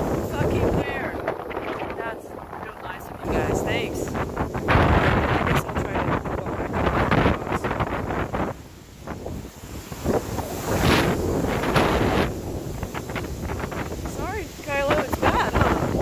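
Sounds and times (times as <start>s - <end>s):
wind buffeting microphone: 0.0s - 16.0s.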